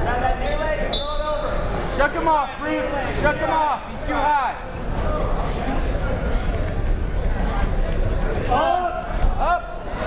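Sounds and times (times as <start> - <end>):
people shouting in a gym: 8.4 - 10.0.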